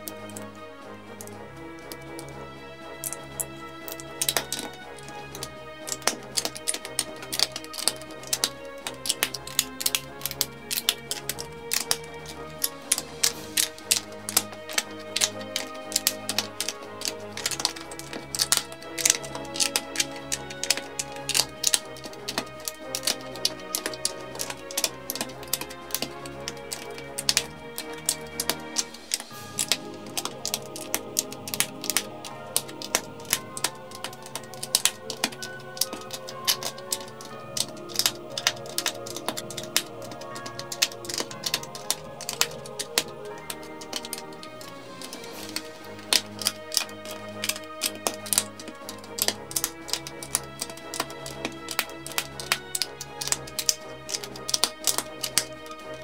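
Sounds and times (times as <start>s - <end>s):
background music: 0.0s - 56.0s
plastic bricks clicking together: 3.0s - 56.0s.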